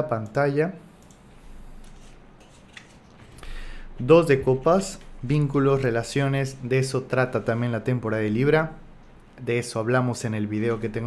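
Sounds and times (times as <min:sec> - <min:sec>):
rustling of cards: 0:01.8 - 0:03.4.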